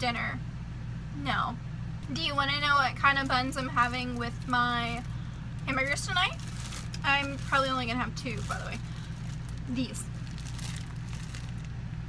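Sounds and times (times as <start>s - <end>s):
steady low hum: 0.0s - 12.0s
plastic bag crinkling: 3.0s - 11.8s.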